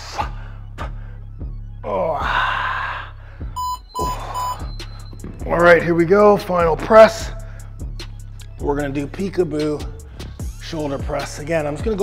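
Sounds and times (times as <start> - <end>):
background music with steady beat: 0.0 - 12.0
short high electronic beeps: 3.6 - 5.2.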